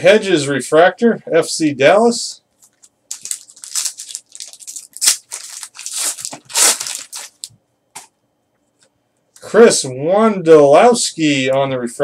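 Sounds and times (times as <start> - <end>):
foil wrapper tearing and crinkling: 2.7 - 7.5.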